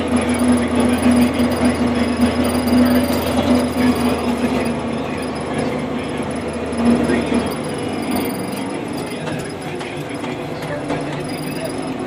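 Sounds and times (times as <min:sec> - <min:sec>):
heavy machine engine drone: 0:00.0 - 0:12.0.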